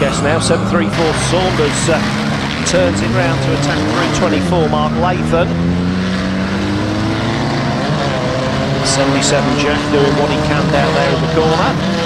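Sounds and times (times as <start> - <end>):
engine rising in pitch: 0.0 - 12.0
van engines droning: 0.0 - 12.0.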